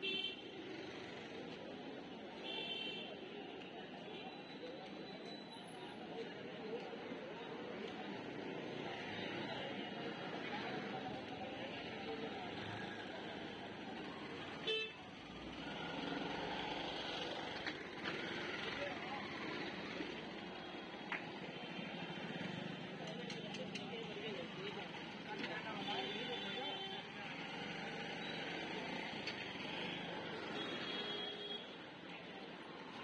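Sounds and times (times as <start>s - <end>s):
motor traffic: 0.0s - 33.0s
passers-by chatter: 0.0s - 33.0s.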